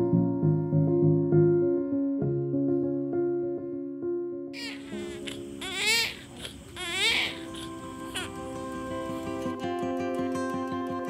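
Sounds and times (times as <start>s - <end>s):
soft background music: 0.0s - 11.0s
baby crying: 4.6s - 9.4s.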